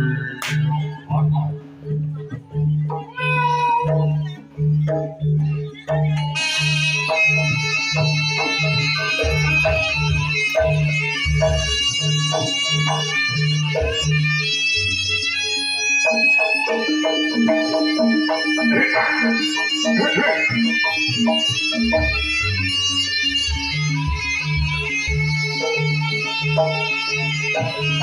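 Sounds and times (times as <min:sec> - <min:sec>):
reedy wind melody: 0:15.2 - 0:28.0.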